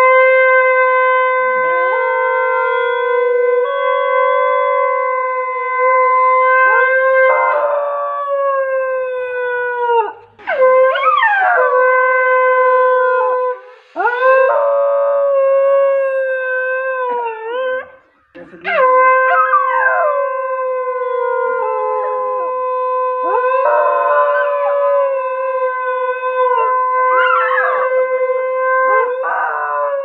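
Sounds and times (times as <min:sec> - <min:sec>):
dog howling: 0:00.0 - 0:18.0, 0:18.6 - 0:30.0.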